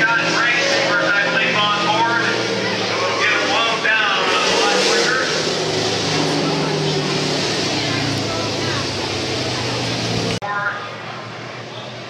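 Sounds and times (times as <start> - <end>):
stock car engines running: 0.0 - 12.0.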